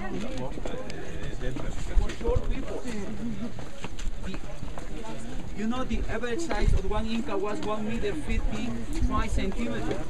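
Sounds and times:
background chatter: 0.0s - 10.0s
footsteps on stone path: 0.0s - 10.0s
man talking: 5.6s - 10.0s.

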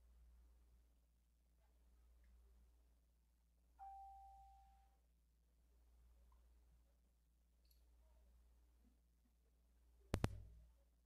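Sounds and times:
single ding: 3.8s - 4.8s.

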